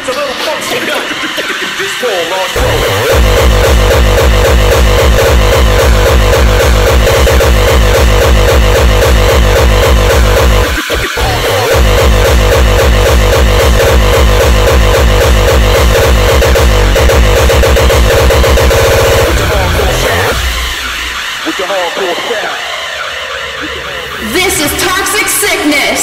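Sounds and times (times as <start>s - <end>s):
hardcore electronic music: 0.0s - 26.0s
fast kick drum: 2.6s - 20.5s.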